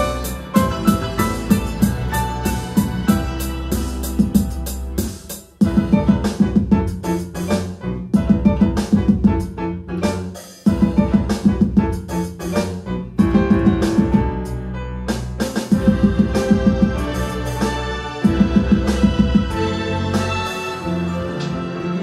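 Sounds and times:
live band playing: 0.0 - 21.6
drum kit: 0.0 - 22.0
grand piano: 0.0 - 22.0.

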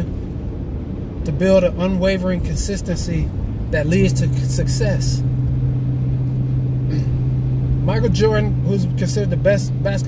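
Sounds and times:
car engine and tyres droning: 0.0 - 10.0.

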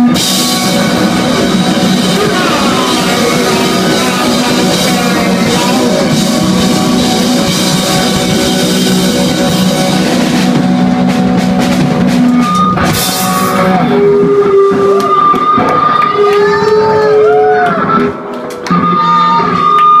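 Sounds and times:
bending electric guitar notes: 0.0 - 20.0
punk rock band playing: 0.0 - 20.0.

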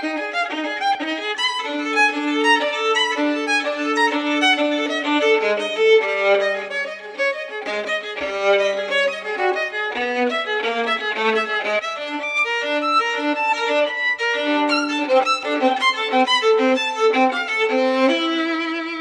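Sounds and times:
solo violin bowed: 0.0 - 19.0.

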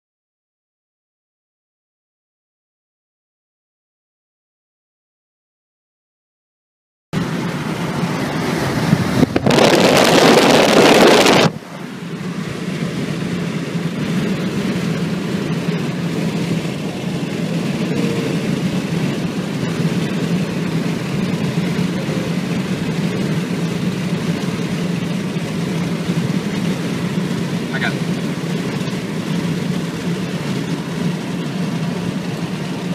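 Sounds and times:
car road and engine noise: 7.2 - 32.9
rush of wind noise: 7.2 - 32.9.

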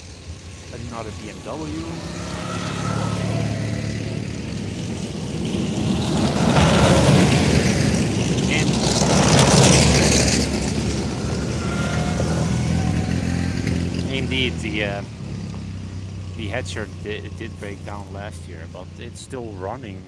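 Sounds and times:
clatter of vehicle tracks: 0.0 - 20.0
tracked vehicle engine: 0.0 - 20.0.

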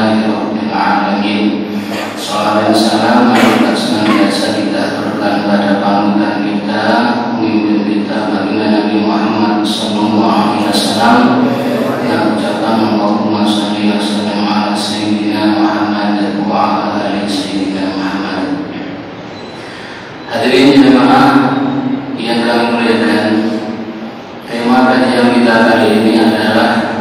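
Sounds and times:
man chanting through microphone: 0.0 - 27.0.

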